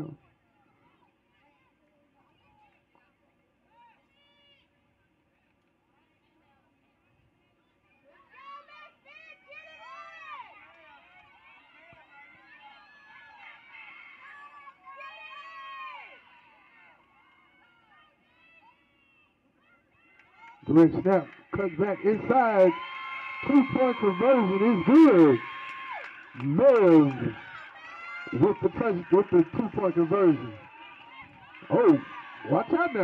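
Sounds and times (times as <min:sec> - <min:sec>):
distant shouting voices: 0:19.8 - 0:33.0.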